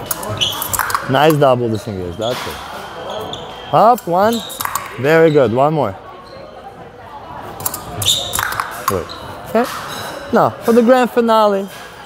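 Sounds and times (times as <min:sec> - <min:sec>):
fencing blades clicking: 0:00.0 - 0:01.1, 0:04.4 - 0:05.0, 0:07.6 - 0:09.0.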